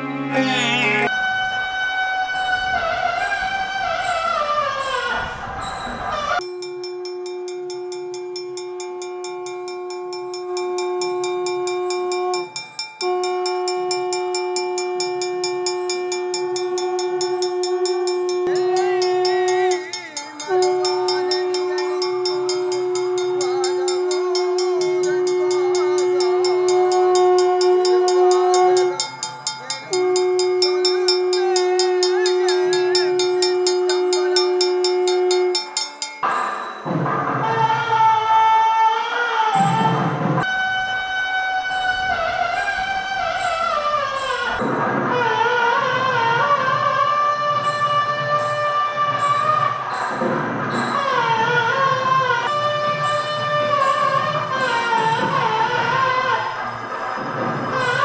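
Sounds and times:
metal gong struck: 0:06.4 - 0:36.5
conch shell blasts: 0:06.4 - 0:36.8.

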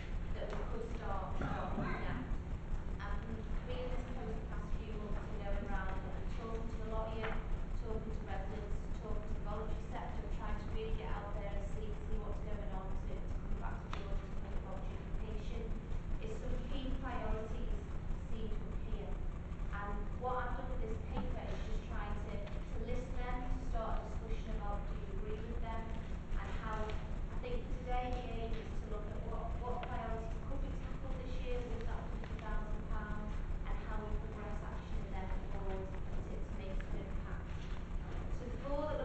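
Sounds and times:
woman speaking: 0:00.0 - 0:02.4, 0:03.0 - 0:39.0
low background rumble: 0:00.0 - 0:39.0.

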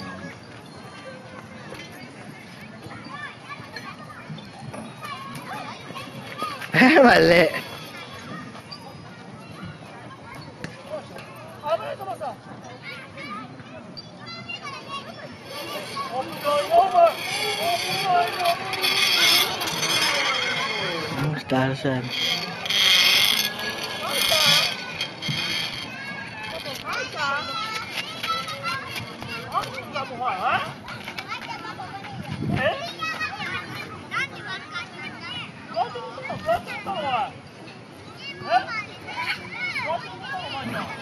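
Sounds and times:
children talking and playing: 0:00.0 - 0:41.0.

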